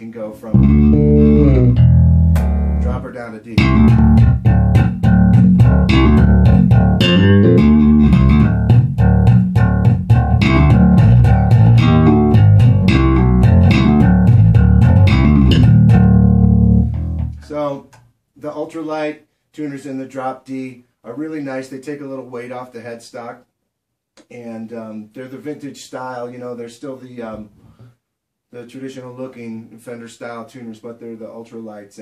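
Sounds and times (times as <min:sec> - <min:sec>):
electric bass playing: 0:00.5 - 0:17.5.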